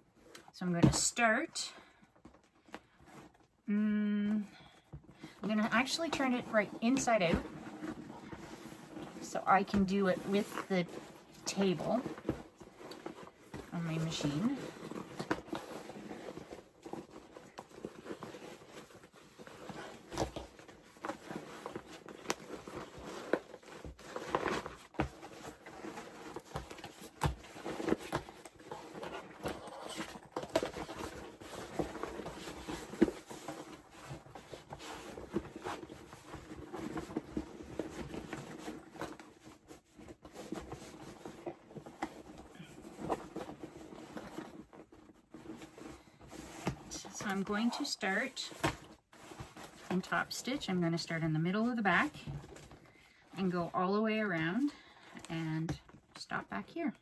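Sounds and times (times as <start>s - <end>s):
canvas bag rustling: 2.9s - 55.2s.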